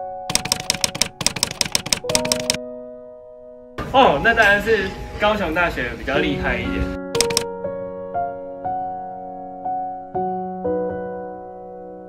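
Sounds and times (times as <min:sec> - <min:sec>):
background music: 0:00.0 - 0:12.0
typewriter key clicks: 0:00.3 - 0:02.6, 0:07.2 - 0:07.5.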